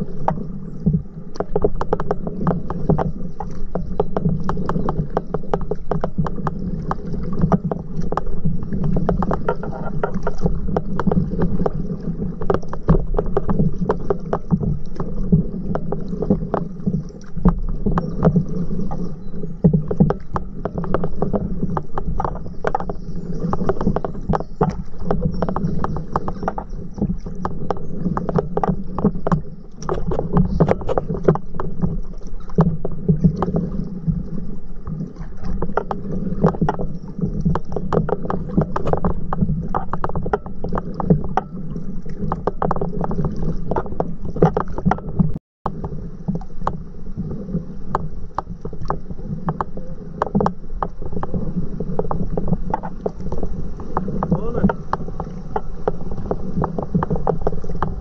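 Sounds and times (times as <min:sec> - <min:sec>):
water lapping and splashing: 0:00.0 - 0:58.0.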